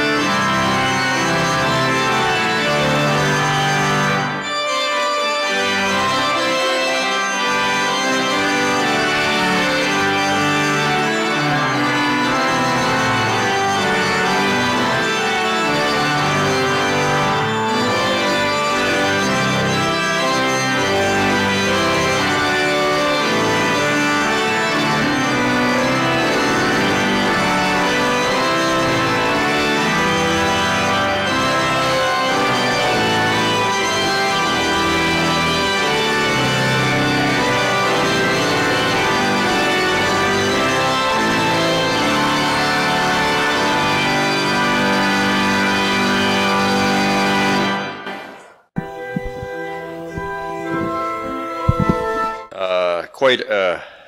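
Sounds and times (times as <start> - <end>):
organ playing sustained chords: 0.0 - 53.0.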